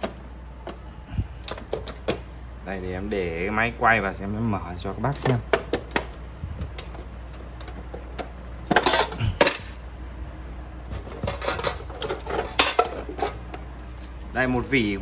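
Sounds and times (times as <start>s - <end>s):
metal tins and discs clinking: 6.8s - 9.7s, 10.9s - 13.6s.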